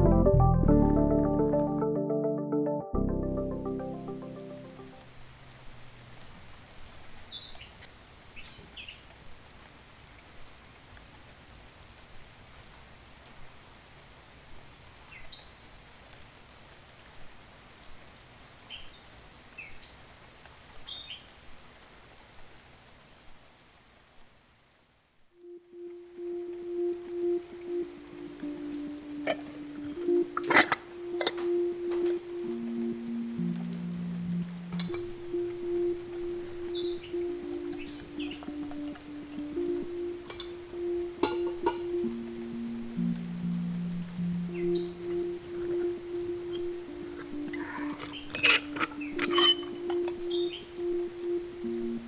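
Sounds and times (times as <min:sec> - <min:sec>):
soft background music: 0:00.0 - 0:05.2, 0:25.4 - 0:52.0
soft steady hiss: 0:03.1 - 0:52.0
bird chirps: 0:36.6 - 0:38.6, 0:47.5 - 0:51.1.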